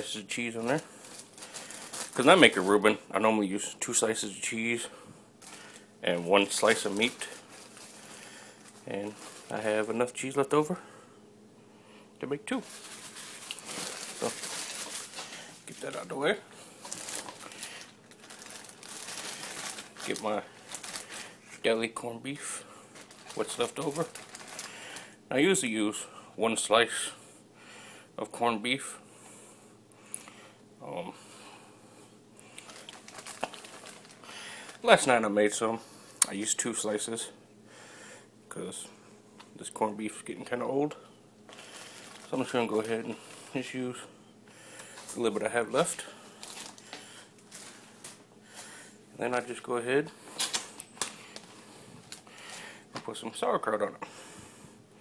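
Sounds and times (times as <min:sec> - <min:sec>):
plastic wrapping crinkling: 0:00.0 - 0:03.0, 0:05.4 - 0:10.5, 0:12.5 - 0:21.8, 0:22.9 - 0:25.2, 0:32.5 - 0:35.2, 0:41.5 - 0:43.7, 0:44.8 - 0:49.5, 0:50.4 - 0:53.1
soft rustles: 0:05.4 - 0:09.8, 0:12.6 - 0:21.7, 0:22.9 - 0:24.7, 0:41.5 - 0:43.6, 0:44.8 - 0:48.8.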